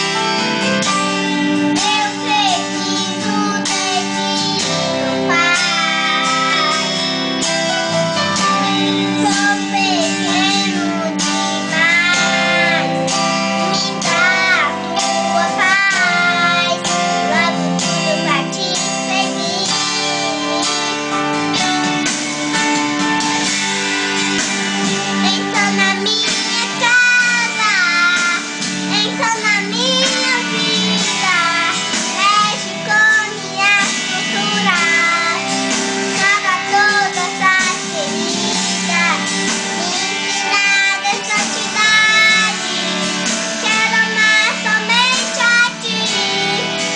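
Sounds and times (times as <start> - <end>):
child singing a slow song: 0.0 - 21.0, 24.8 - 46.9
guitar accompaniment: 0.0 - 46.9.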